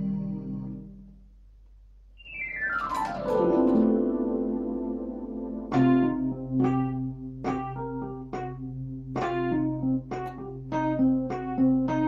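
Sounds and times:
electric piano glissando: 2.2s - 12.0s.

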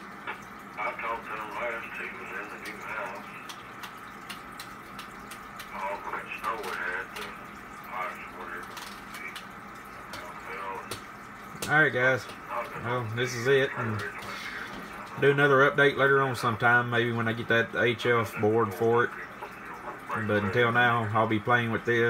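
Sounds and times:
steady background noise: 0.0s - 22.0s
radio speech through a speaker: 0.3s - 3.9s, 5.5s - 22.0s.

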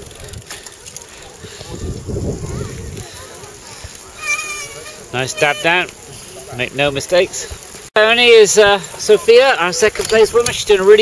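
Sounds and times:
wind buffeting microphone: 0.0s - 4.2s.

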